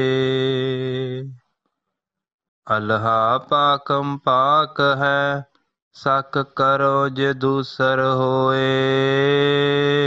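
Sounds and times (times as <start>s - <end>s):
man chanting: 0.0s - 1.4s, 2.7s - 10.0s.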